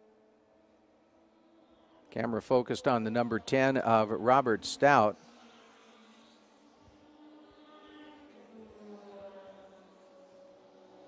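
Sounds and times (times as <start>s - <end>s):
race car engine drone: 0.0s - 11.0s.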